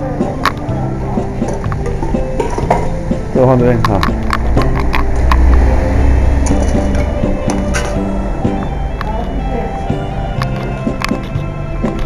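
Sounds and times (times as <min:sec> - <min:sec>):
backing track with low bass: 0:00.0 - 0:12.0
clinks of bowls and utensils: 0:01.4 - 0:03.0
saxophone slow melody: 0:04.5 - 0:12.0.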